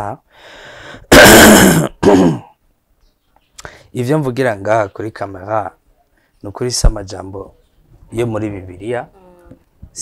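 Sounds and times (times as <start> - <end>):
man clearing his throat: 1.1 - 2.6.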